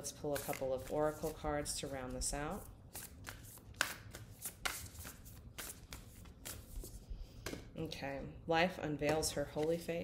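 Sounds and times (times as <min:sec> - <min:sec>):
cards being shuffled: 0:02.9 - 0:07.6.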